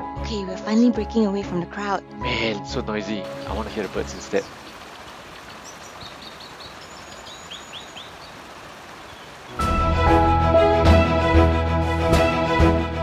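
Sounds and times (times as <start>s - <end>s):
birds chirping: 2.6s - 9.8s
steady hiss: 3.2s - 9.7s
bird whistling: 5.5s - 8.4s.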